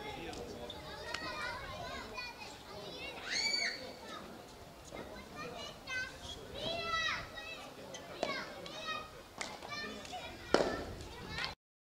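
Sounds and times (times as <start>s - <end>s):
children calling and shouting: 0.0s - 11.6s.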